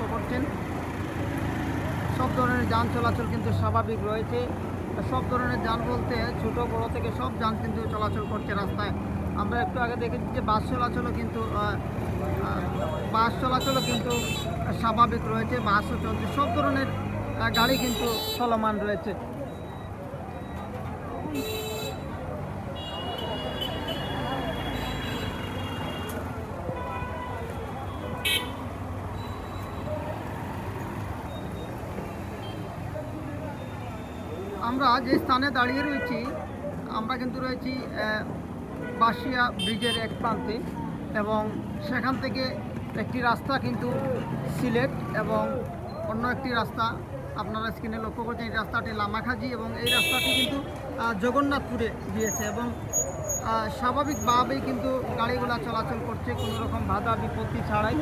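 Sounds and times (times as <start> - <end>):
motorbikes passing: 0.0 - 58.0
street traffic: 0.0 - 58.0
voices talking: 0.0 - 58.0.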